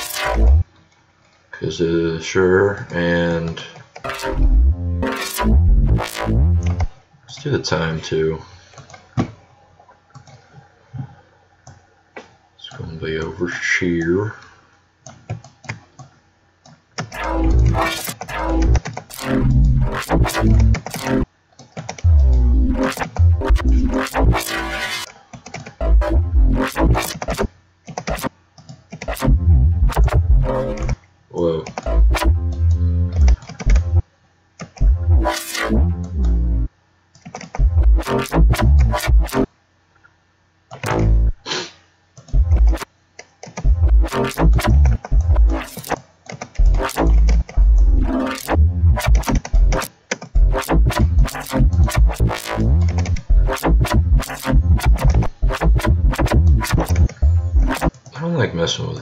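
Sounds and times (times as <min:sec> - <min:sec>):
choppy synthesized bass: 0:00.0 - 0:00.6, 0:04.0 - 0:07.0, 0:17.2 - 0:21.3, 0:22.0 - 0:25.1, 0:25.8 - 0:27.5, 0:28.1 - 0:28.3, 0:29.1 - 0:31.0, 0:31.8 - 0:34.0, 0:34.8 - 0:36.7, 0:37.6 - 0:39.5, 0:40.8 - 0:41.4, 0:42.3 - 0:42.9, 0:43.6 - 0:46.0, 0:46.6 - 0:57.9.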